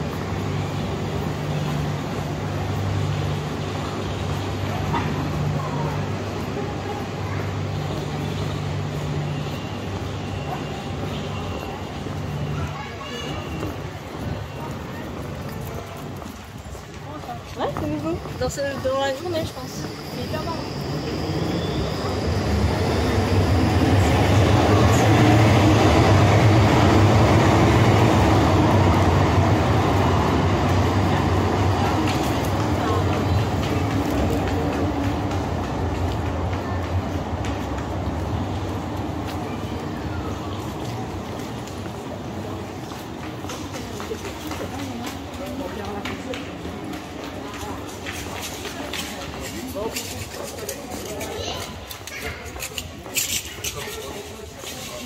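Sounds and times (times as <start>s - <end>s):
tram rumbling on rails: 0.0s - 55.0s.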